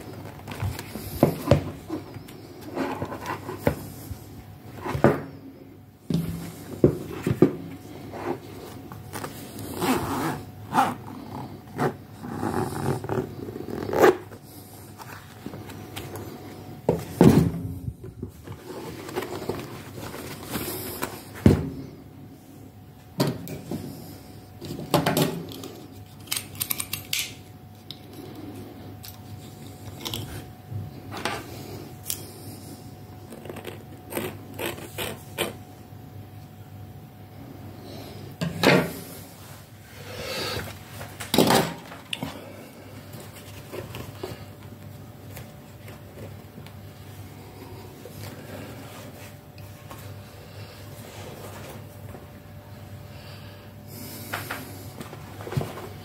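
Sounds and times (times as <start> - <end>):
craft knives clicking and scraping: 25.6 - 27.4.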